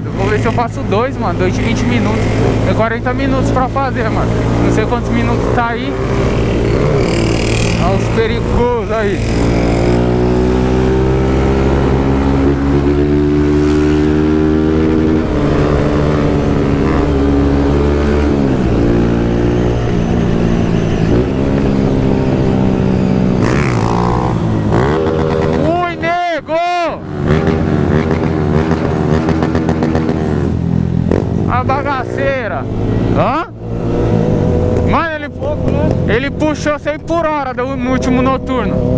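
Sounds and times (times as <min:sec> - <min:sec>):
motorcycle engine revving: 0:00.0 - 0:38.9.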